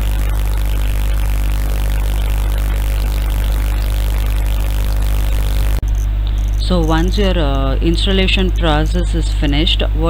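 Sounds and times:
constant hiss: 0.0s - 10.0s
low electrical hum: 0.0s - 10.0s.

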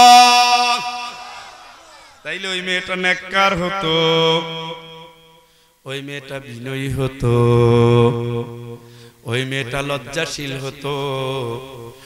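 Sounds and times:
man chanting a sermon: 0.0s - 1.2s, 2.2s - 12.0s.

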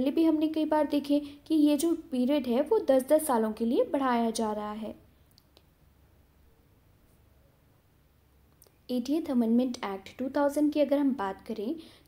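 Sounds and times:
faint clicks: 5.3s - 5.7s.

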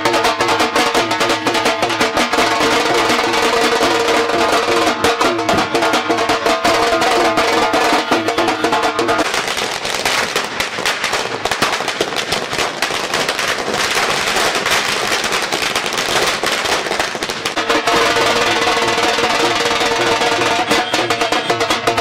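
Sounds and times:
dhol drumming: 0.0s - 22.0s
firecrackers crackling: 0.0s - 22.0s.

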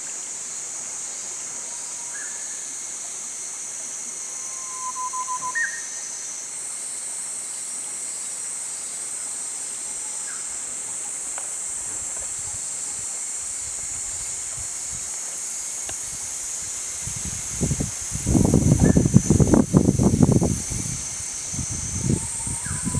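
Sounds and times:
high-pitched outdoor hiss: 0.0s - 22.9s
small animal or bird calls: 22.2s - 22.9s.

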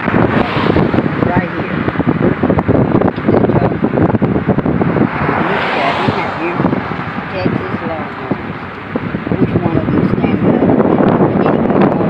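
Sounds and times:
car road noise: 0.0s - 12.0s
wind buffeting microphone: 0.0s - 12.0s.

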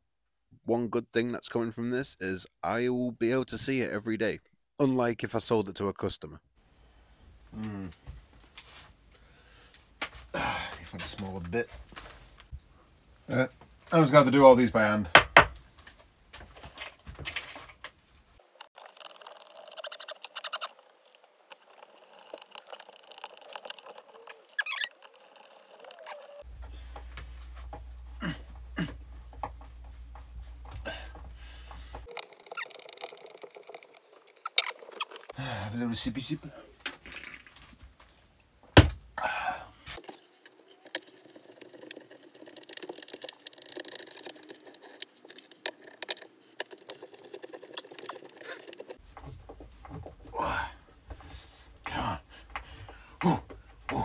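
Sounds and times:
short squeak: 19.7s - 20.8s, 24.2s - 25.0s.

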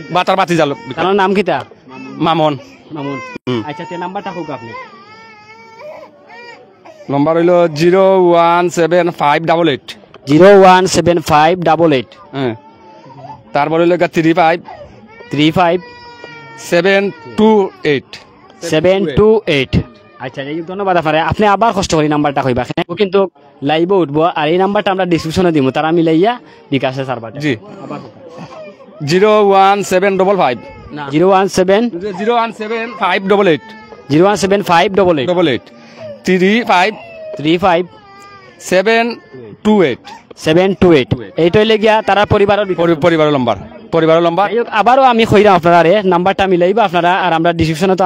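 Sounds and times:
man speaking: 16.6s - 37.9s, 38.6s - 48.0s.

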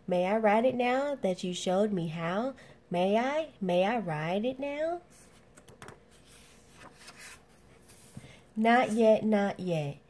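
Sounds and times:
page turning: 5.2s - 8.3s.

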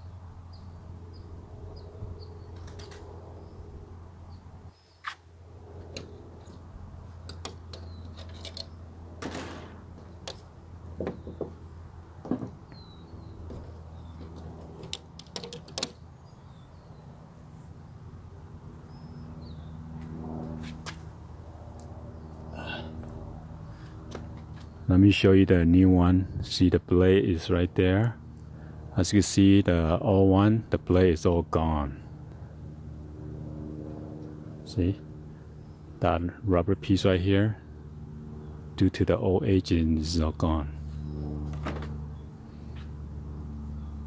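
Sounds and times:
steady low hum: 0.0s - 44.0s
steady low rumble: 39.4s - 44.0s.

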